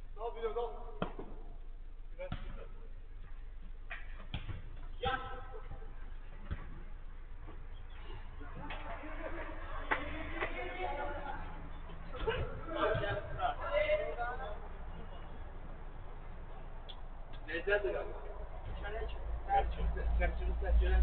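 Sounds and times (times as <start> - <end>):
football kick thuds: 3.9 - 5.4
players calling out: 7.5 - 15.9.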